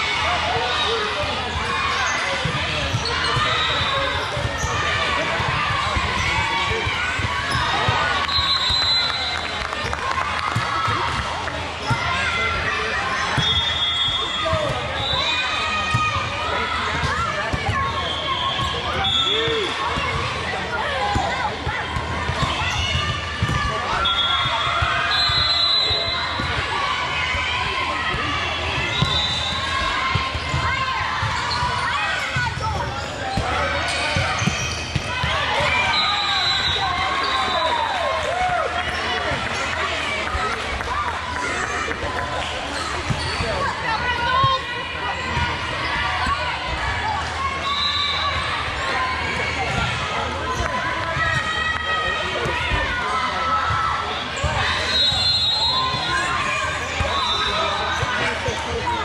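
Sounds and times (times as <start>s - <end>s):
shoes squeaking on court floor: 28.8s - 37.6s, 42.7s - 44.6s.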